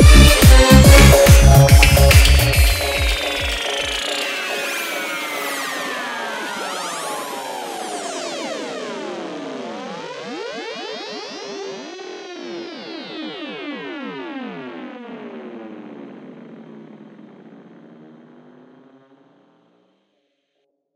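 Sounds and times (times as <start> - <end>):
slowly falling synth tone: 0.0 - 9.5
psytrance synthesizer sweeps: 0.0 - 14.2.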